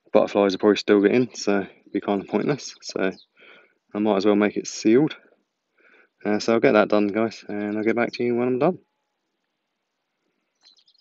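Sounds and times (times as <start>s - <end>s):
faint bird chirps: 1.0s - 3.6s, 10.4s - 11.0s.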